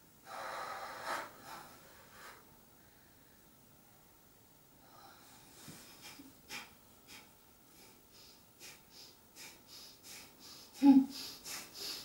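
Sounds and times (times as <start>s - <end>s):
woman gasping breath: 7.8s - 12.0s.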